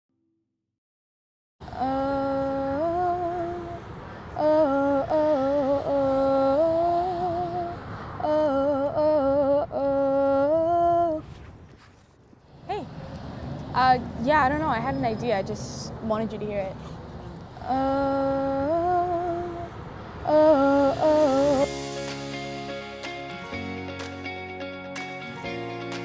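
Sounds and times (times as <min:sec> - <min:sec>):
woman humming: 0:01.7 - 0:03.8.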